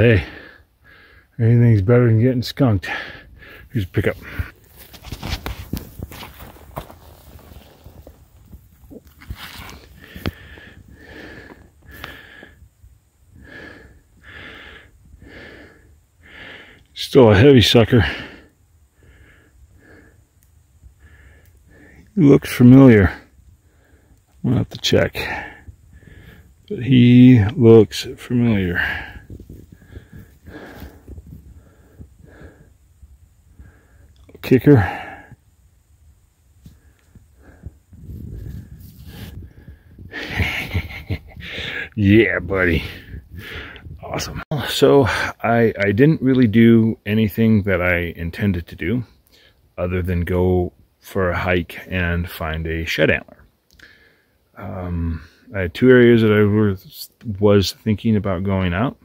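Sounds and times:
man breathing in puffs: 0:00.2 - 0:01.4, 0:02.9 - 0:08.2, 0:09.2 - 0:12.7, 0:13.3 - 0:16.9, 0:18.0 - 0:22.1, 0:23.6 - 0:24.3, 0:25.2 - 0:26.6, 0:28.7 - 0:32.9, 0:33.5 - 0:34.2, 0:36.6 - 0:40.3, 0:42.8 - 0:43.9, 0:53.8 - 0:54.5
crunching of leaves and snow: 0:04.1 - 0:10.6
heavy whistling breathing: 0:09.5 - 0:16.9, 0:25.5 - 0:26.7, 0:28.6 - 0:34.2.

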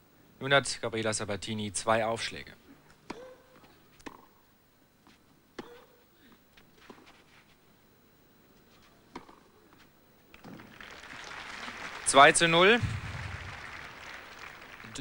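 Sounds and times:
tennis ball pops: 0:04.0 - 0:04.3, 0:09.1 - 0:09.4
crowd applause: 0:10.4 - 0:15.0.

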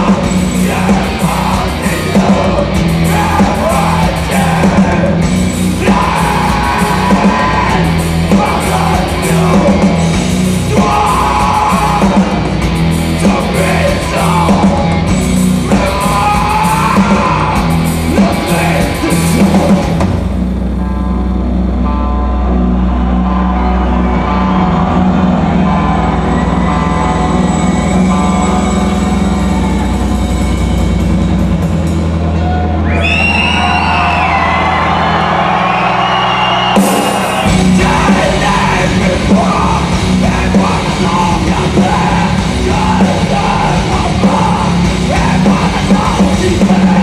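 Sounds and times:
rock band playing: 0:00.0 - 0:47.0.

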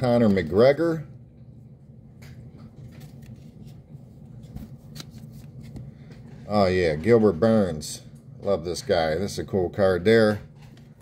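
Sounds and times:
trading cards rustling: 0:02.8 - 0:06.7.

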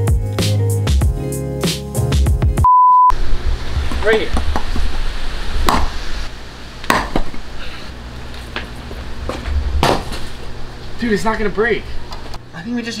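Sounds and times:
sharp knocks on rock: 0:05.7 - 0:05.9, 0:06.9 - 0:07.3.

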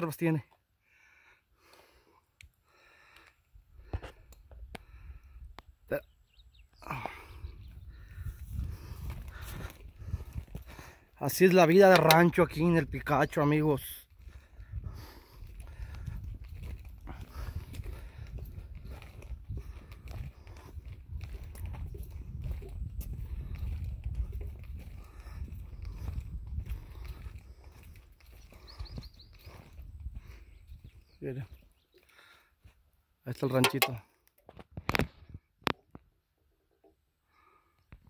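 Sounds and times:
wind buffeting microphone: 0:06.4 - 0:11.2, 0:14.1 - 0:31.2
footsteps on dirt track: 0:06.9 - 0:34.0.

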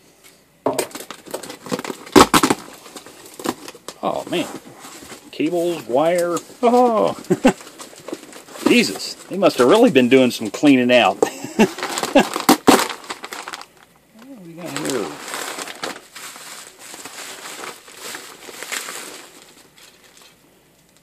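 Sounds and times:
bubble wrap crinkling: 0:00.9 - 0:21.0.

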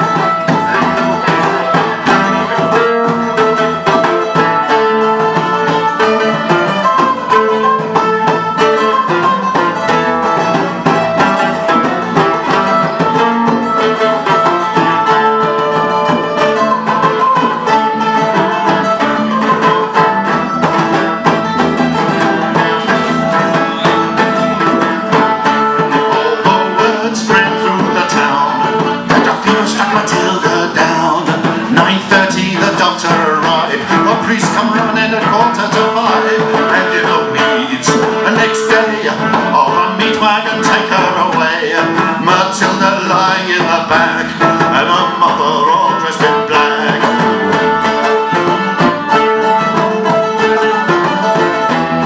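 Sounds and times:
fiddle: 0:00.0 - 0:52.0
hand drum: 0:00.0 - 0:52.0
strummed guitars: 0:00.0 - 0:52.0.

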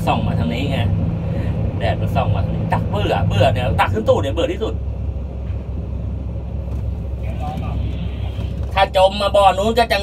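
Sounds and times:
low engine rumble: 0:00.0 - 0:10.0.

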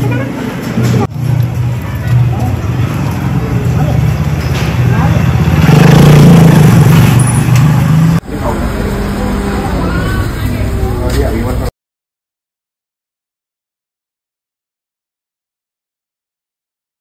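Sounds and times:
voices: 0:00.0 - 0:11.7
motorcycle engine running: 0:00.9 - 0:11.1.

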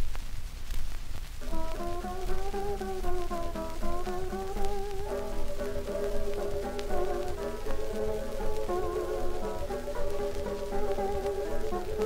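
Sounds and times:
record hiss and crackle: 0:00.0 - 0:12.0
plucked guitar chords: 0:01.4 - 0:12.0
sliding guitar melody: 0:01.4 - 0:12.0.

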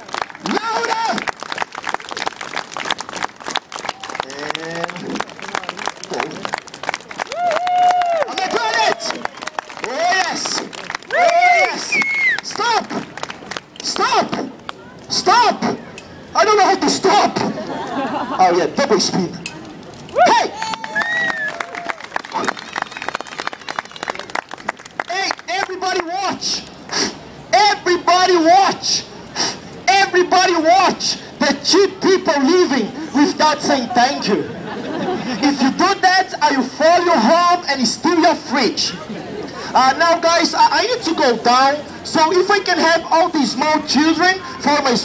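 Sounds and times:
crowd clapping in rhythm: 0:00.0 - 0:14.1, 0:20.6 - 0:26.1
person speaking: 0:35.2 - 0:45.0.

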